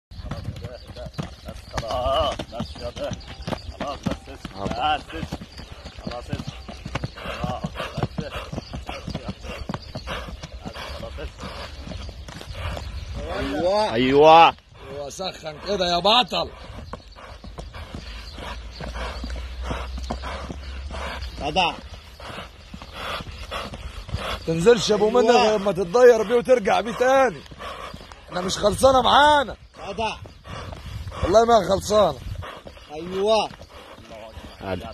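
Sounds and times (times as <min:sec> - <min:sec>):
hooves on packed dirt: 0:00.1 - 0:34.9.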